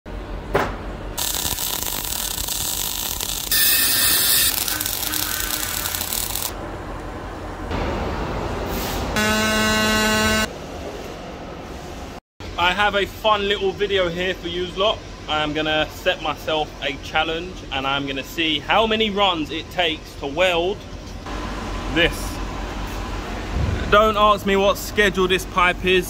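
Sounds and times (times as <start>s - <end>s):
loud steady buzzing tone: 1.2s - 6.6s, 9.2s - 10.5s
welding arc hissing and crackling: 1.2s - 6.6s.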